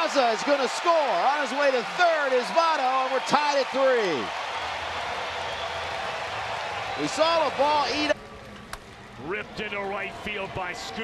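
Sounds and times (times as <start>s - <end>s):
crowd cheering and applauding: 0.0s - 11.0s.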